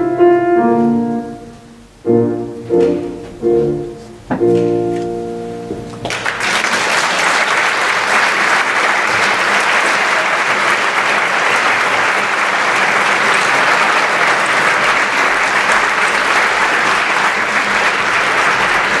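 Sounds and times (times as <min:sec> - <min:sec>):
audience applauding: 0:06.0 - 0:19.0.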